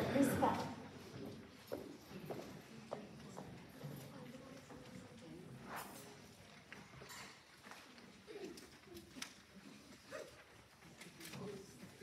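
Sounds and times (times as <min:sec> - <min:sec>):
faint audience voices: 0:00.0 - 0:12.0.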